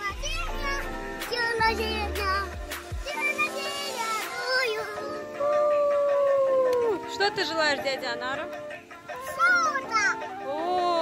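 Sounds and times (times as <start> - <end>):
background music: 0.0 - 11.0
long howl-like call: 5.2 - 7.0.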